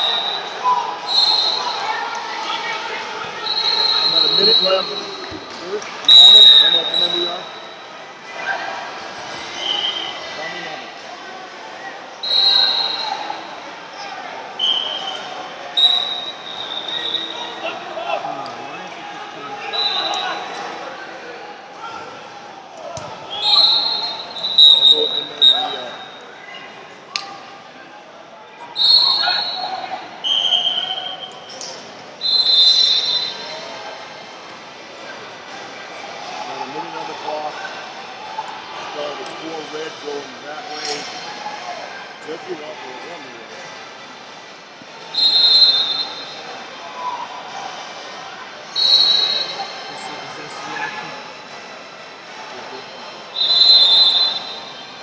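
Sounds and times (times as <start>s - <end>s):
referee whistle blasts: 0.0s - 1.9s, 3.4s - 5.4s, 6.1s - 7.9s, 9.5s - 10.4s, 12.2s - 13.3s, 14.6s - 17.6s, 19.6s - 20.6s, 23.0s - 26.2s, 28.8s - 31.5s, 32.2s - 33.6s, 45.1s - 46.4s, 48.7s - 50.3s, 52.9s - 55.0s
echoing babble of voices: 0.0s - 55.0s.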